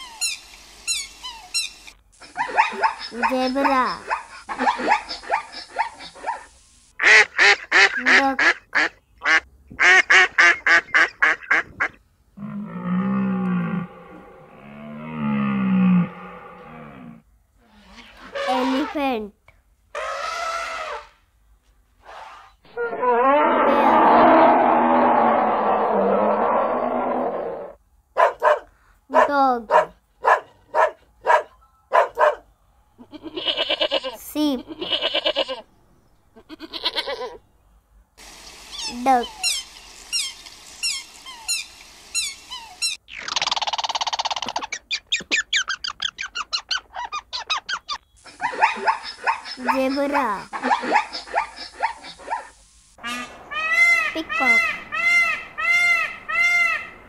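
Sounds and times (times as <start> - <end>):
elephant trumpeting: 19.9 - 21.2, 22.1 - 27.8
goose honking: 53.0 - 57.0.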